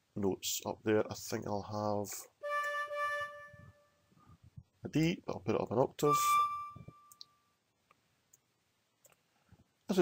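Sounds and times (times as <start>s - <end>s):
synthesized flute note: 2.4s - 3.9s, 6.1s - 7.1s.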